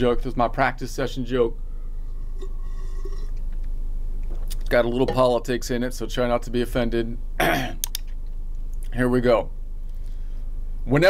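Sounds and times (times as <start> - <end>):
low background hum: 0.0 - 11.0
faint high tones: 1.5 - 3.4.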